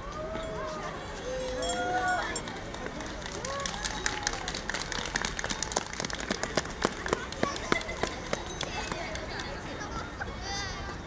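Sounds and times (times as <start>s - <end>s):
audience hand-clapping: 2.2s - 9.4s.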